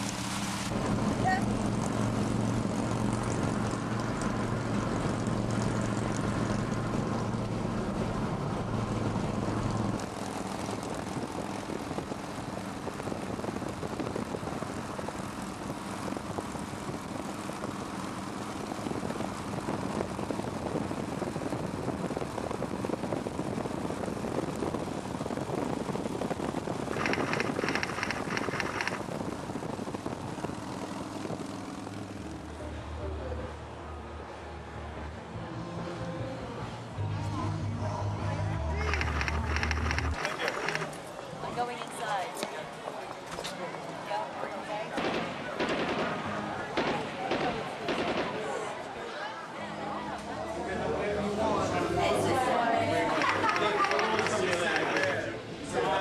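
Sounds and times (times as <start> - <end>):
engine drone: 0.0 - 41.0
wind and road rush: 0.0 - 56.0
rapid chattering: 26.8 - 29.0, 38.8 - 41.0, 53.0 - 55.2.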